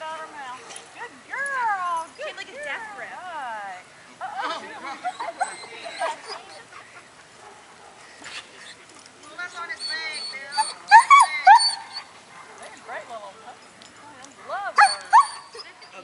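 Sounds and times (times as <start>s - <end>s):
dog whining: 5.0s - 6.7s, 9.7s - 12.1s, 14.8s - 16.0s.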